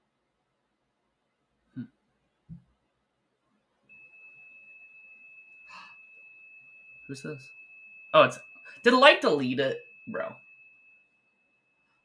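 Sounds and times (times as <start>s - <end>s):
steady high-pitched electronic beep: 3.9s - 12.0s.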